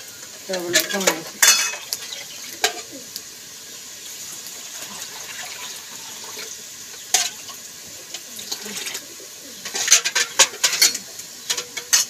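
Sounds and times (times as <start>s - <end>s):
water pouring into a bowl: 4.1s - 6.8s, 8.3s - 9.2s.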